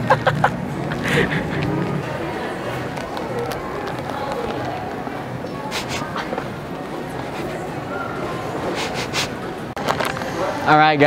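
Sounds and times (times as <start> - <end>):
indistinct voices: 0.0 - 11.0
supermarket background noise: 0.0 - 11.0.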